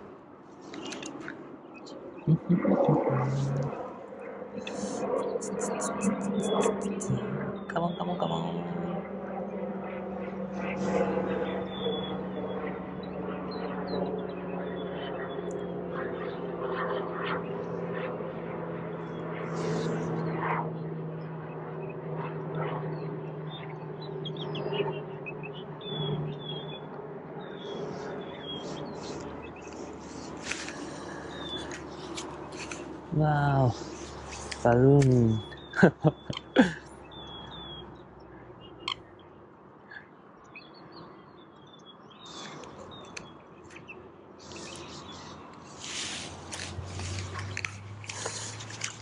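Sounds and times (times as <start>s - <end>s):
birds chirping: 0.6s - 9.0s, 22.8s - 49.0s
low drone falling in pitch: 2.2s - 3.9s, 4.5s - 13.2s.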